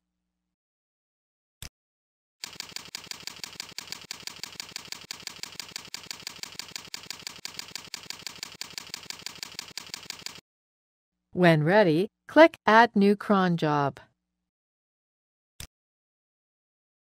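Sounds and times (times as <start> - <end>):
computer keyboard typing: 2.4 - 10.4.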